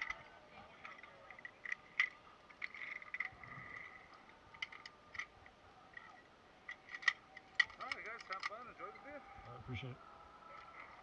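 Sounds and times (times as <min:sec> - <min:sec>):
clicks and rattles: 0:00.0 - 0:09.1.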